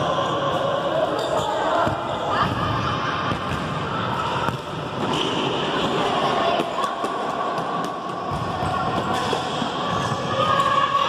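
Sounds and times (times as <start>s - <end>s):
balls bouncing on wooden court: 0.5s - 10.8s.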